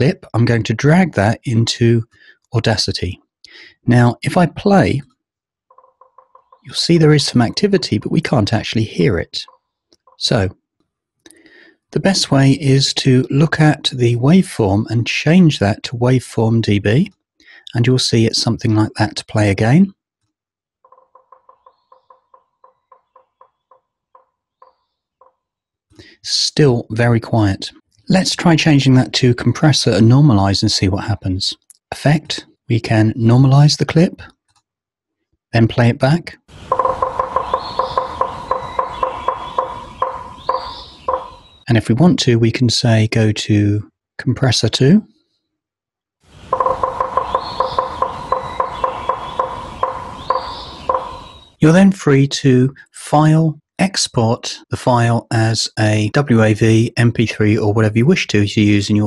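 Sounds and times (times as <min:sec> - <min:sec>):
woodpecker pecking on tree: 0:05.7 - 0:06.7, 0:09.4 - 0:10.2, 0:20.2 - 0:25.6, 0:36.6 - 0:41.6, 0:46.5 - 0:51.6.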